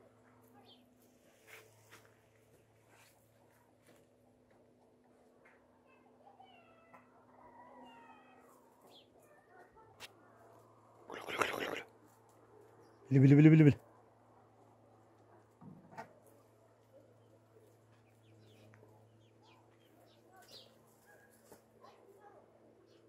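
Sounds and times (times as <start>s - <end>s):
faint calls and ticks: 6.7s - 13.9s
loud animal call: 11.1s - 11.9s.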